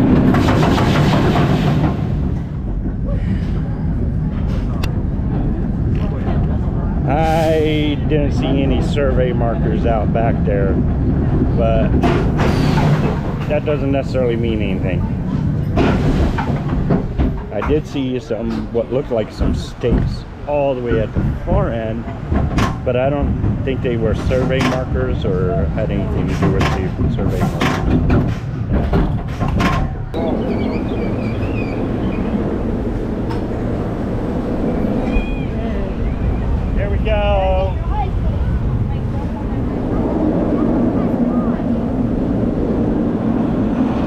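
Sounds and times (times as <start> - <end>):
roller coaster rumbling on track: 0.0 - 44.0.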